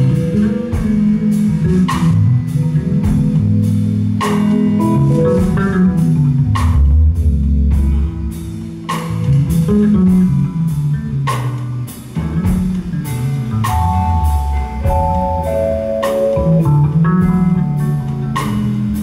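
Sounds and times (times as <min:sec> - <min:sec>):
bass guitar: 0:00.0 - 0:19.0
drum kit: 0:00.0 - 0:19.0
electric guitar lines: 0:00.0 - 0:19.0.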